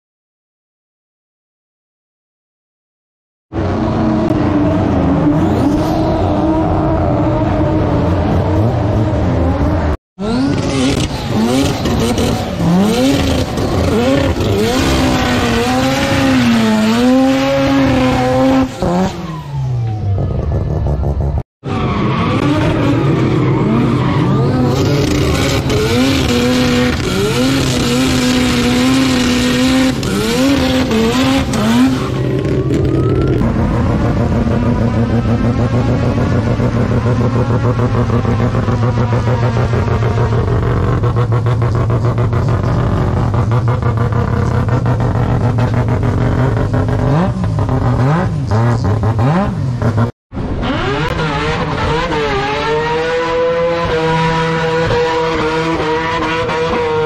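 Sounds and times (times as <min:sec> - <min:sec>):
race car engines revving: 0:03.5 - 0:57.0.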